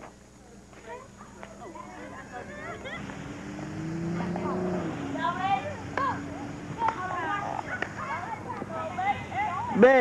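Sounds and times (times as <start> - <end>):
faint chatter of voices: 0.0 - 10.0
steady engine drone: 2.2 - 9.8.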